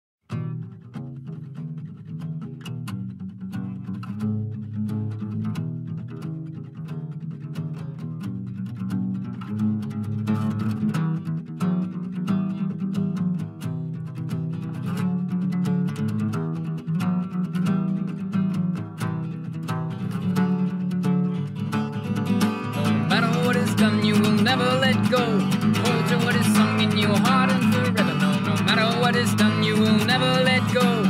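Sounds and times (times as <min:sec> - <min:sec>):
acoustic guitars playing: 0:00.3 - 0:31.0.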